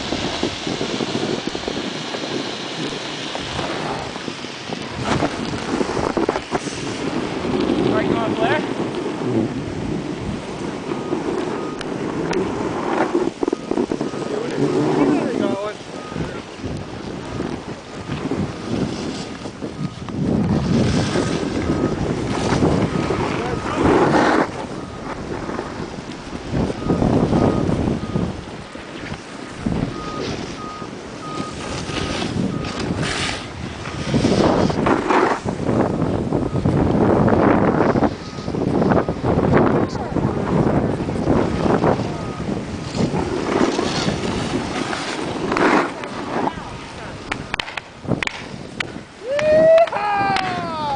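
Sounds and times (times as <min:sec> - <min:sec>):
wind buffeting microphone: 0:00.0 - 0:50.9
faint pulsing high beep: 0:11.0 - 0:11.9, 0:15.2 - 0:16.4, 0:26.8 - 0:28.3, 0:29.9 - 0:32.8, 0:38.2 - 0:39.3, 0:42.1 - 0:42.5.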